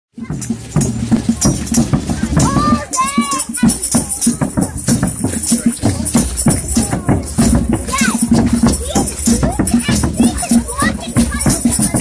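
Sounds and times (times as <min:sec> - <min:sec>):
drums and shakers beat: 0:00.1 - 0:12.0
crowd voices: 0:00.2 - 0:12.0.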